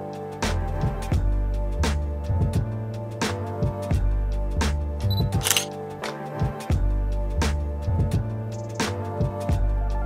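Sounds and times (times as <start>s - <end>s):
background music with beat: 0.0s - 10.0s
camera shutter click: 5.1s - 5.7s.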